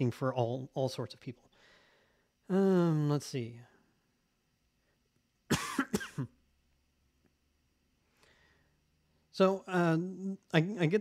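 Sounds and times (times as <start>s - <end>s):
man coughing: 5.5s - 6.4s.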